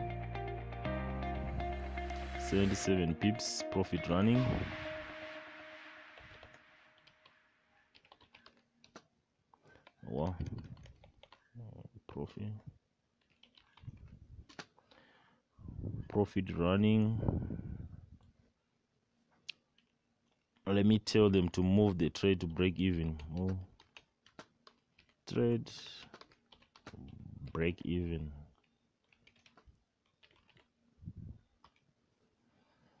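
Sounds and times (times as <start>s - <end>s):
faint keyboard typing: 6.2s - 11.6s, 12.4s - 15.1s, 19.5s - 30.8s, 31.4s - 32.0s.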